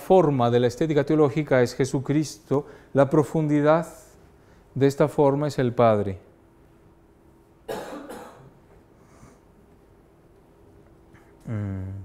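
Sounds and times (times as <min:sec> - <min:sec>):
person coughing: 0:07.7 - 0:08.6.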